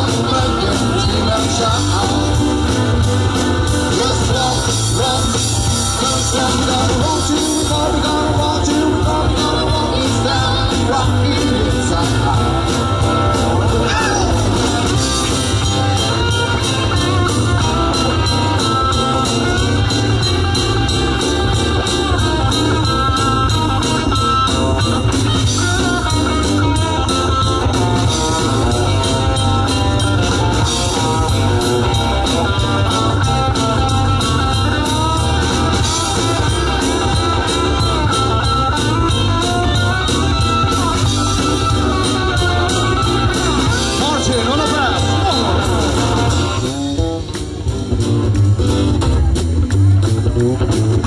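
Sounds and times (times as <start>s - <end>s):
bass guitar: 0.0s - 51.0s
drum kit beat with cymbals: 0.0s - 51.0s
electric guitar lead: 0.0s - 51.0s.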